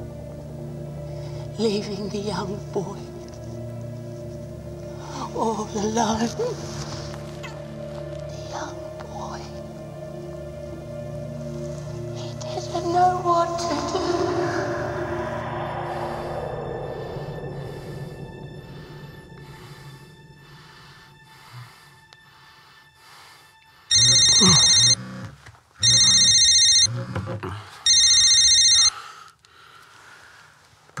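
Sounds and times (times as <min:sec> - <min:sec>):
film score music: 0:00.0 - 0:31.0
mobile phone ringing: 0:23.9 - 0:25.0, 0:25.8 - 0:27.0, 0:27.9 - 0:28.9.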